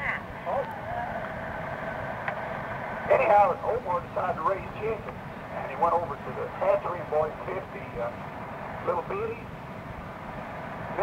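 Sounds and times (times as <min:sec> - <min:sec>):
bus engine and road rumble: 0:00.0 - 0:11.0
faint steady hum: 0:00.0 - 0:11.0
tape hiss: 0:00.0 - 0:11.0.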